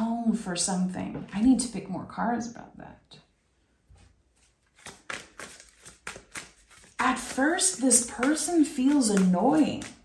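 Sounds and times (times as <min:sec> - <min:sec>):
cards being shuffled: 0:04.4 - 0:10.0.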